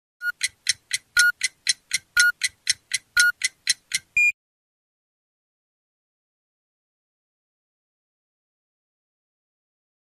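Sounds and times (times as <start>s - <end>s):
clock ticking: 0.2s - 4.3s.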